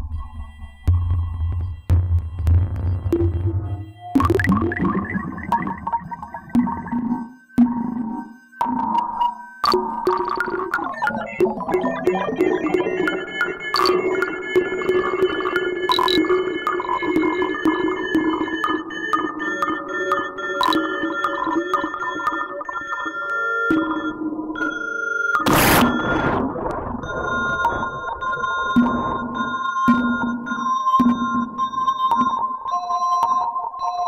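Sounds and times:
loud burst of noise: 25.4 - 29.4
synth tones changing pitch: 25.4 - 29.5.

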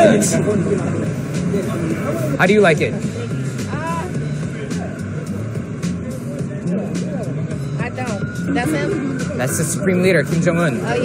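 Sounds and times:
low voices: 0.0 - 11.0
steady traffic: 0.0 - 11.0.

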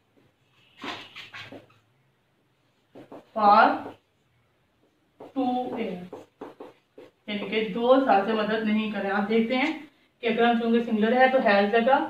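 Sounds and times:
marker squeaking on whiteboard: 0.2 - 7.7.

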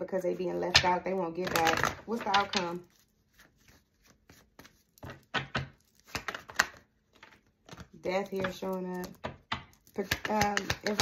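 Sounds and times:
cards being shuffled: 1.4 - 11.0.

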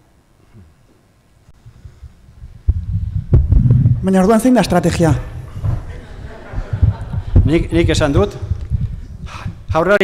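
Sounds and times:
low rumble: 1.6 - 9.9
microphone handling thumps: 1.6 - 10.0.

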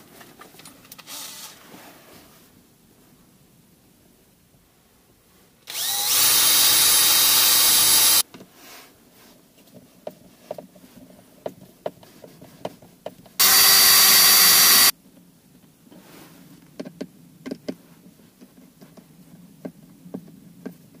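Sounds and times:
cordless drill spinning: 5.7 - 8.2, 13.4 - 14.9.

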